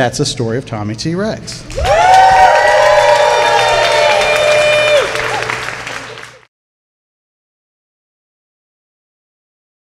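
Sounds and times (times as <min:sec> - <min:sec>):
people cheering and whooping: 0:01.7 - 0:06.4
audience applauding: 0:01.7 - 0:06.5.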